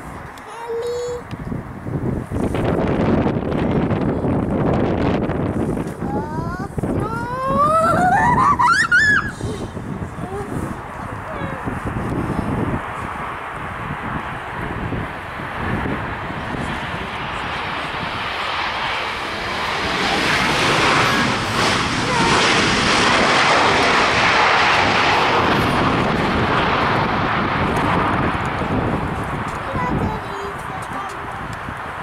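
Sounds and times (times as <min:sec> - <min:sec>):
jet engine noise of landing plane: 0:01.2 - 0:32.0.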